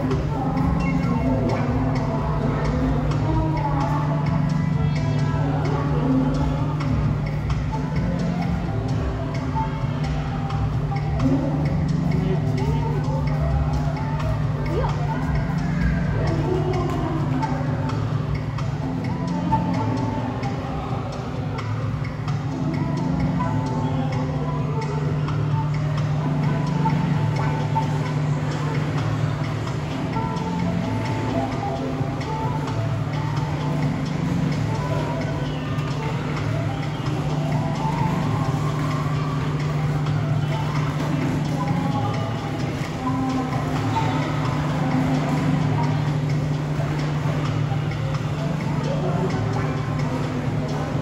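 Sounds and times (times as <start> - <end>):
indistinct voices: 0.0 - 51.0
music with ticking beat: 0.0 - 51.0
steady low hum: 0.0 - 51.0.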